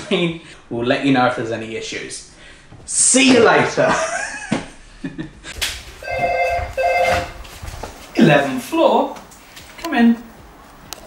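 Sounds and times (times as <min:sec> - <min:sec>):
intercom electronic ring tone: 0:06.0 - 0:07.4.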